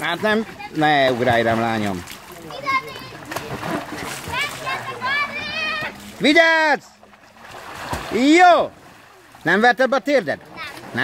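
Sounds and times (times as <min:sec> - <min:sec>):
water splashing in paddling pool: 0:00.0 - 0:11.0
children shouting: 0:04.2 - 0:06.0.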